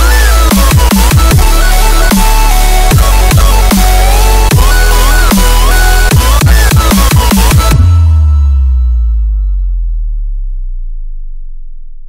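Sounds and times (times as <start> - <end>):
deep low synth tone: 0.0 - 12.0.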